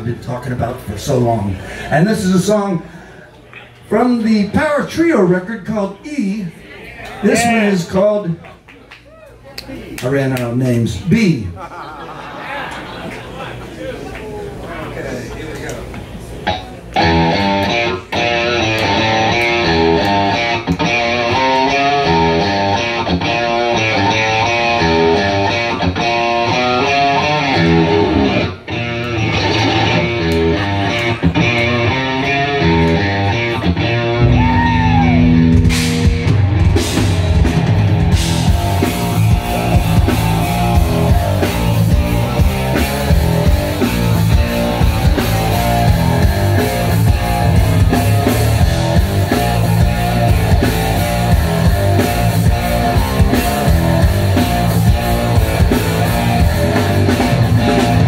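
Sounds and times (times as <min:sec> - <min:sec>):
bass guitar: 0:16.4 - 0:58.0
electric guitar note pattern: 0:16.5 - 0:58.0
drum kit: 0:17.0 - 0:58.0.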